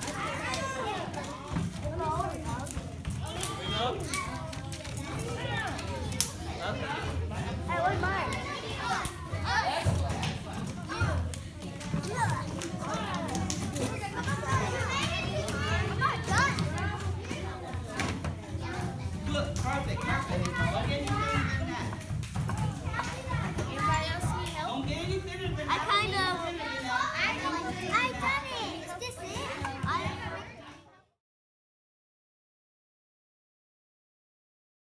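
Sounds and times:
children chattering: 0.0s - 31.2s.

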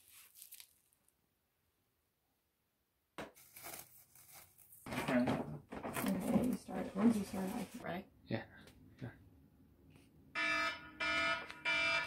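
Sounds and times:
plastic stretch wrap crinkling: 0.0s - 1.1s, 3.4s - 4.9s.

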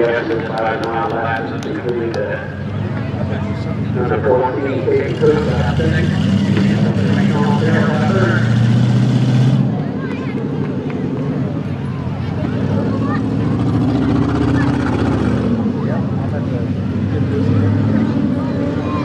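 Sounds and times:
car engines running at low speed: 0.0s - 19.0s
voices of people: 0.0s - 19.0s.

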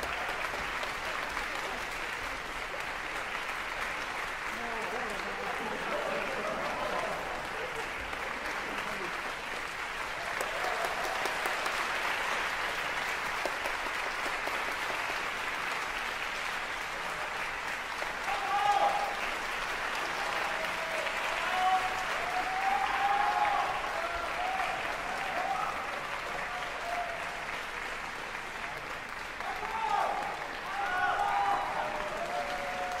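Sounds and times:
audience applauding: 0.0s - 33.0s.

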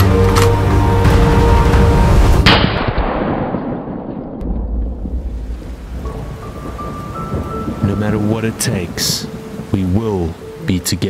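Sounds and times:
background music: 0.0s - 2.7s, 4.7s - 11.0s
shotgun blast: 2.4s - 4.4s.

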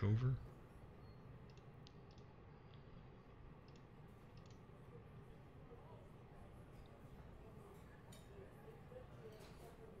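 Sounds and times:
computer mouse clicks: 1.4s - 4.7s.

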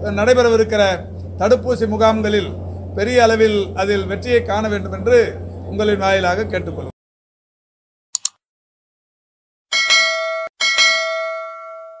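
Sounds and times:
notification bell chime: 9.7s - 12.0s.

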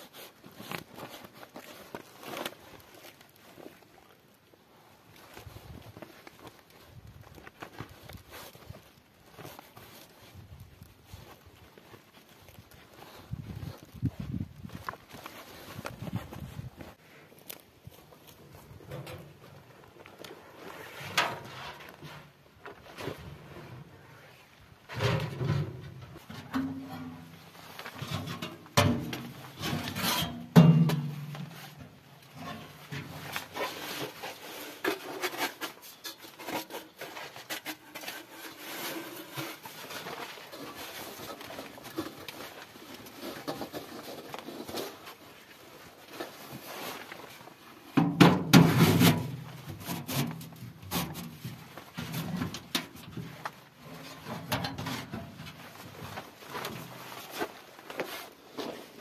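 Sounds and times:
metal scraping and knocking: 28.0s - 31.6s
tent flap rustling: 53.2s - 59.0s.

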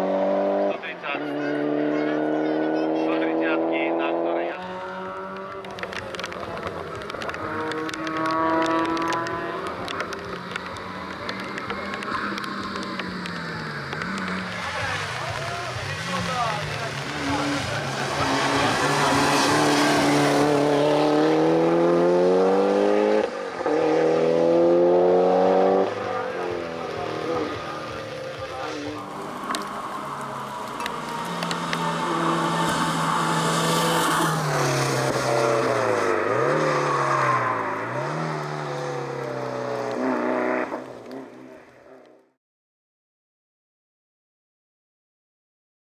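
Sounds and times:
car engine accelerating hard: 0.0s - 42.3s.

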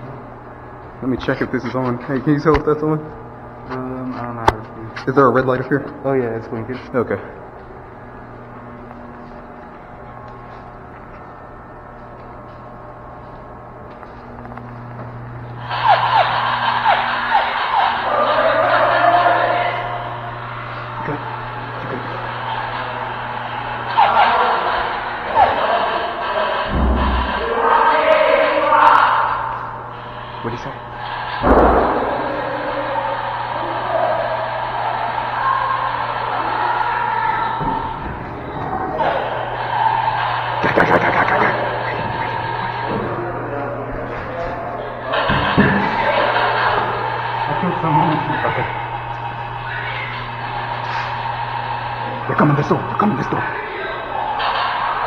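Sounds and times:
steady low hum: 0.0s - 55.0s
raised voices: 14.4s - 55.0s
heavy thuds: 31.4s - 32.7s
echoing music: 31.4s - 34.0s.

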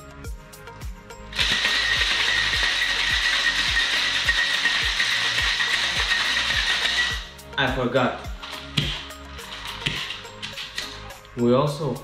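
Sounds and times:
background music with a beat: 0.0s - 12.0s.

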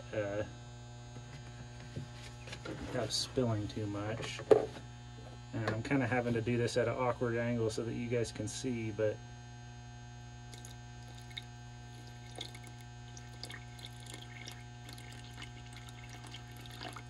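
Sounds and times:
steady low hum: 0.0s - 17.0s
small splashes and drips: 10.5s - 17.0s
water trickling from a jug: 10.5s - 17.0s.

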